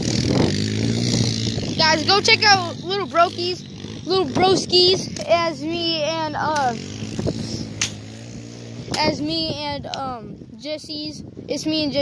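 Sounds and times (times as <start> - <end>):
atv engine idling: 0.0 - 10.8.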